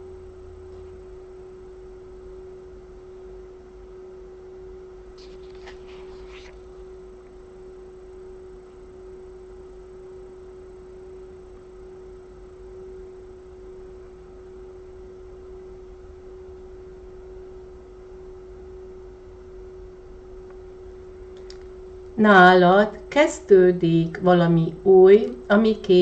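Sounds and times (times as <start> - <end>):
faint low hum: 0.0 - 26.0
steady pure tone: 0.0 - 26.0.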